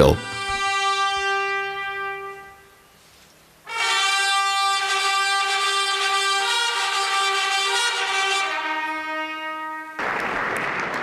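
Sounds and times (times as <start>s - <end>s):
brass band playing chords: 0.0s - 2.9s, 3.6s - 10.2s.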